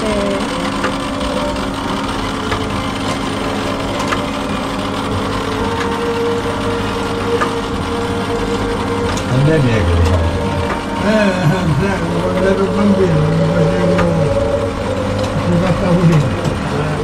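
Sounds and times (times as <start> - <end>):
low mechanical hum: 0.0 - 17.0
held tone: 1.2 - 17.0.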